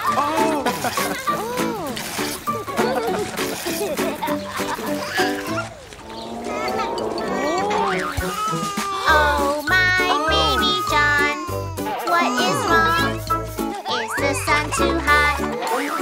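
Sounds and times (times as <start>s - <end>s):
children's song backing music: 0.0s - 16.0s
cartoon baby giggling: 0.1s - 1.9s, 2.7s - 5.7s, 6.5s - 9.2s, 10.2s - 16.0s
cartoon baby whimpering: 6.4s - 14.3s.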